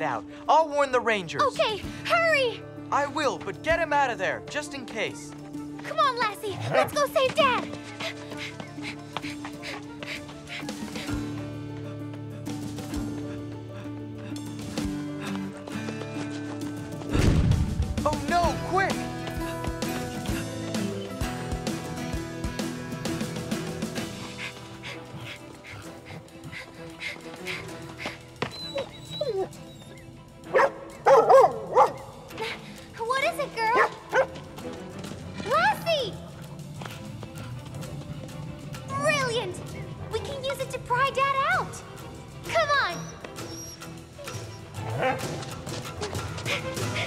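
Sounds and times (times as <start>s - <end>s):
cartoon score music: 1.1s - 11.7s, 12.4s - 47.0s
dog barking: 6.5s - 8.2s, 30.5s - 32.2s, 33.7s - 34.4s
deep thump: 17.1s - 18.0s.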